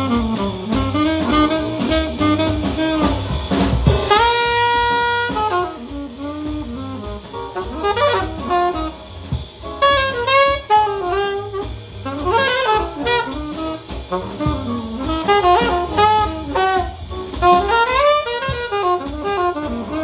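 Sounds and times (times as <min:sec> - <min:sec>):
alto saxophone playing jazz blues: 0:00.0 - 0:20.0
drum kit: 0:00.0 - 0:20.0.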